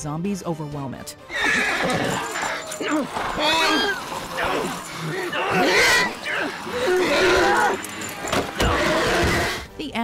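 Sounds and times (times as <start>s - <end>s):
loud jumbled commotion: 1.3s - 9.6s
horse whinnying: 1.3s - 9.7s.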